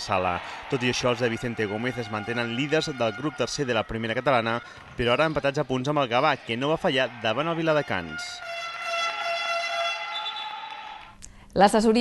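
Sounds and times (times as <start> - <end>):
basketball buzzer horn tone: 7.1 - 11.0.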